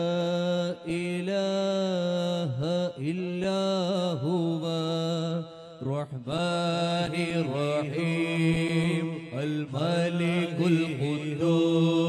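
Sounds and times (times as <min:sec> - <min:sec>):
man chanting unaccompanied: 0:00.0 - 0:12.0.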